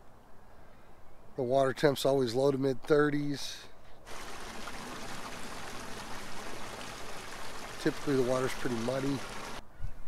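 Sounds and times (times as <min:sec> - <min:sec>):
water lapping against rocks: 0:04.1 - 0:09.6.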